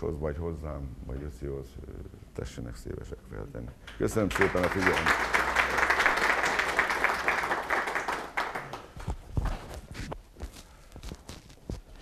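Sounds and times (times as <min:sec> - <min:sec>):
audience applause: 0:04.0 - 0:09.0
knocks and footsteps: 0:08.8 - 0:12.0.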